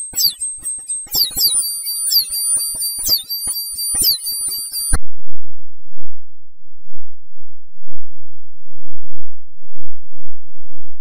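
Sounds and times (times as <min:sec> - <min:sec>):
high falling squeals: 0:00.0 - 0:05.0
piercing tones: 0:00.0 - 0:05.0
muffled low rumble: 0:05.0 - 0:11.0.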